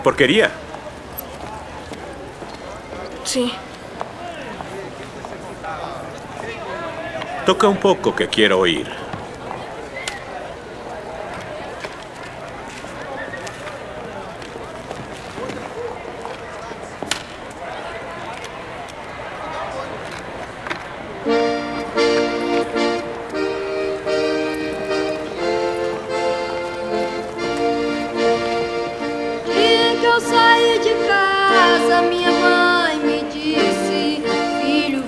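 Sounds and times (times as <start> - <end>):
murmuring background voices: 0.0 - 35.0
accordion chords: 21.2 - 35.0.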